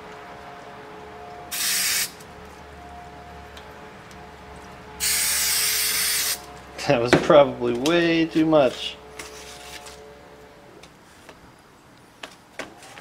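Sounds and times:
aerosol can spraying: 1.5s - 2.2s, 5.0s - 6.4s.

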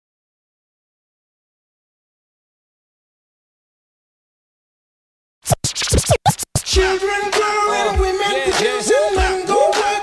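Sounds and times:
turntable scratches: 5.4s - 7.1s
hip hop beat: 5.5s - 10.0s.

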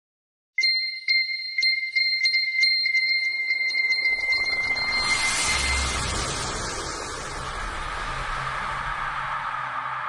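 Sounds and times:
high chiming tone: 0.6s - 7.5s
rushing whoosh: 3.9s - 10.0s
low rumble: 4.0s - 10.0s.

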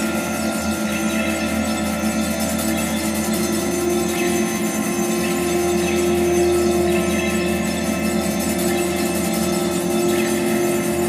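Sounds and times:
low synthesized drone: 0.0s - 11.0s
shimmering high tones: 0.0s - 11.0s.

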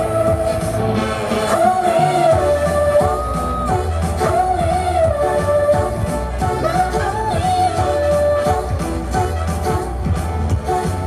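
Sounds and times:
female vocals singing: 0.0s - 9.3s
pop song over sound system: 0.0s - 11.0s.

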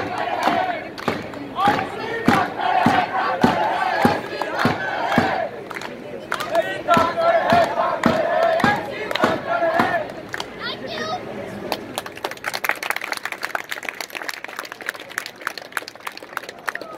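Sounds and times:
voices chanting in unison: 0.0s - 5.6s, 6.3s - 10.3s.

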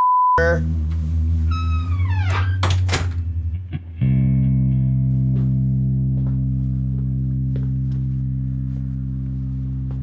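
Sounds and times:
music with steady bass line: 0.4s - 10.0s.

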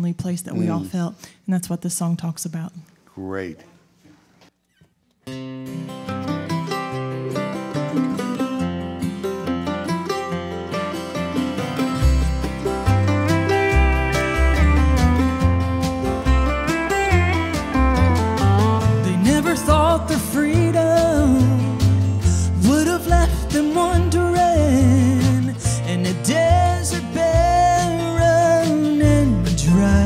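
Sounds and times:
acoustic guitar: 0.0s - 1.4s, 4.1s - 30.0s
deep upright bass notes: 0.5s - 1.0s, 11.2s - 30.0s
mandolin: 5.2s - 30.0s.

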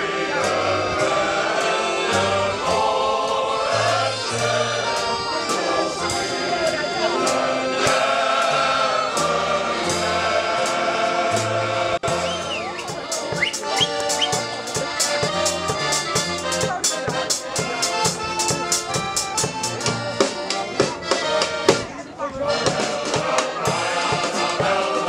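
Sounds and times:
male choir singing in unison: 0.0s - 12.4s, 22.6s - 25.0s
drum kit with cymbal beat: 10.7s - 22.0s, 22.6s - 25.0s.

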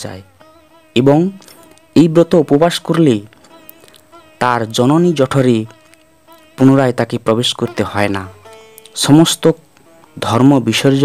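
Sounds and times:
man speaking: 0.0s - 0.3s, 1.0s - 3.4s, 4.4s - 11.0s
faint steady buzzing tone: 0.0s - 11.0s.

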